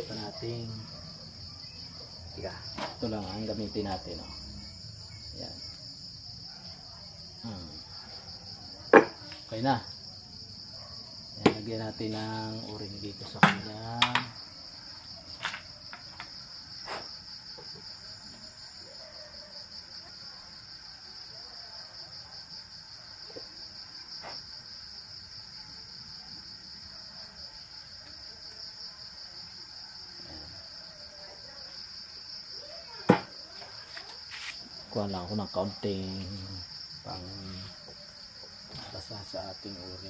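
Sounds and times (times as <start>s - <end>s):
crickets chirring: 0.0s - 40.0s.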